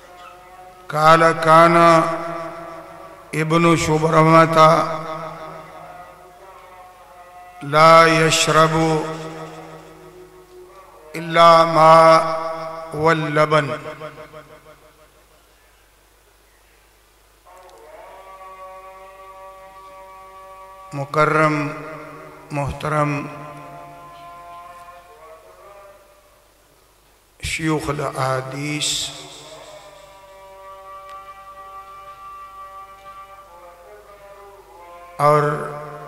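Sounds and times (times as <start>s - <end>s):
man chanting over loudspeaker: 0.0s - 15.2s, 17.4s - 26.6s, 27.4s - 36.0s.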